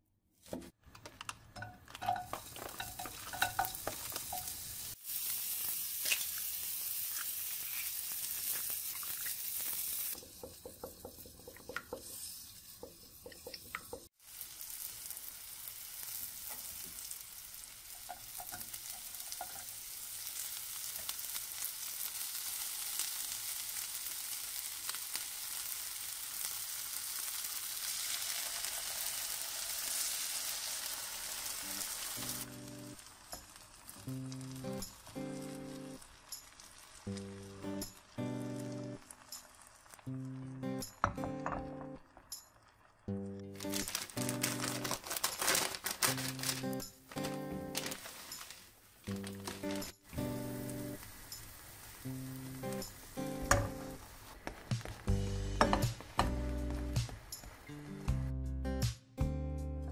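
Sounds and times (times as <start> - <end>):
utensil clicking in a pan: 0.9 - 4.6
meat sizzling in a frying pan: 2.0 - 57.9.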